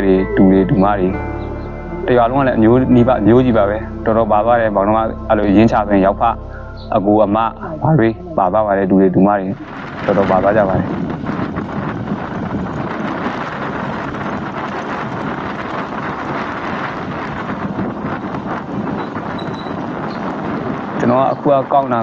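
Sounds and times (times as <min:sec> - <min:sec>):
wind buffeting microphone: 0:00.0 - 0:22.0.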